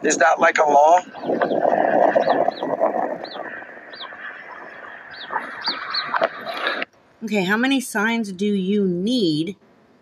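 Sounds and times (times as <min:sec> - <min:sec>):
outdoor noise rushing: 0:00.0 - 0:08.2
bird chirping: 0:00.9 - 0:06.9.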